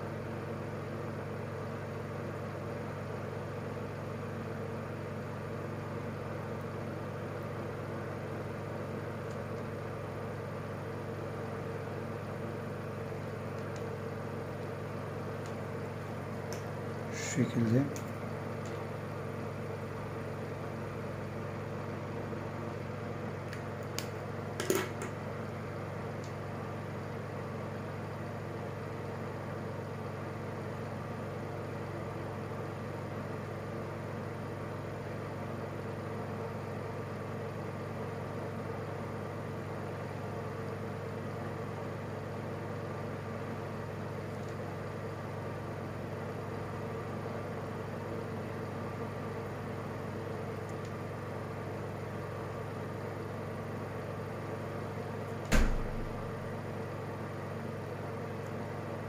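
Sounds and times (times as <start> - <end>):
steady mechanical hum: 0.0 - 59.0.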